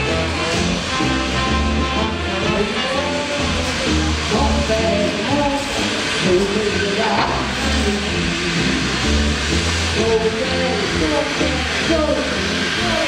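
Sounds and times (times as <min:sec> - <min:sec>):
background music with bass line: 0:00.0 - 0:13.0.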